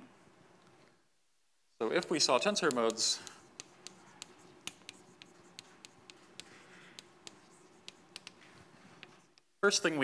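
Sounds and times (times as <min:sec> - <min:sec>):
chalk tapping on blackboard: 0:01.9 - 0:09.5
chalk scratching: 0:02.0 - 0:09.5.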